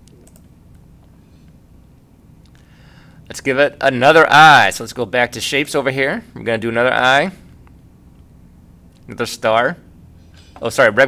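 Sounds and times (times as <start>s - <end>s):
computer mouse or key clicks: 0.0s - 1.1s
low steady hum: 0.0s - 11.0s.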